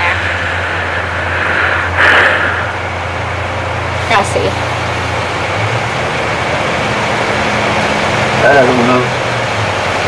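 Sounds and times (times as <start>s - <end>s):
rushing noise: 0.0s - 10.0s
steady low hum: 0.0s - 10.0s.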